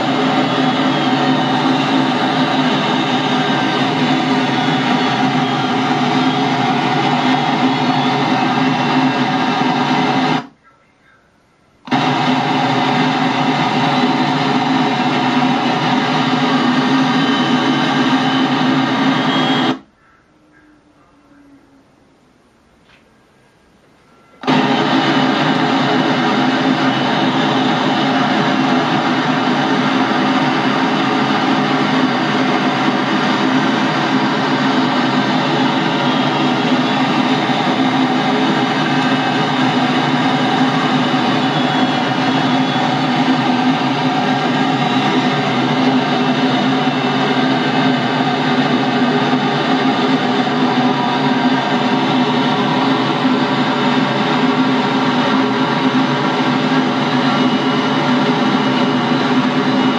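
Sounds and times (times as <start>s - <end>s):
light aircraft engine drone: 0.0s - 22.2s, 23.2s - 59.9s.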